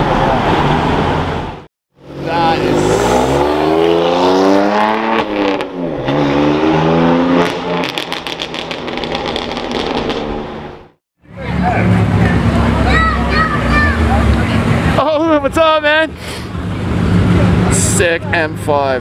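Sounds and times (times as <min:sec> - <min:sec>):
car engine revving: 0:00.0 - 0:15.5
exhaust crackles and pops: 0:07.4 - 0:10.7.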